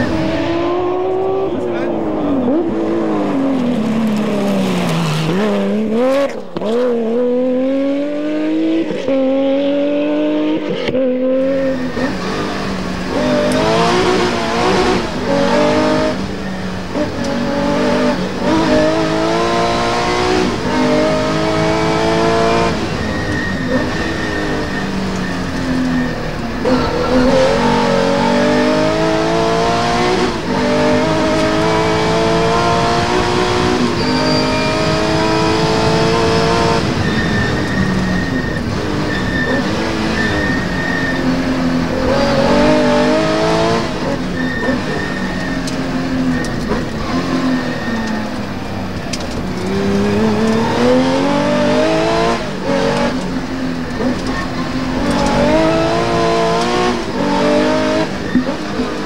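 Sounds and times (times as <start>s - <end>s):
rally car engine revving through gears: 0.0s - 59.0s.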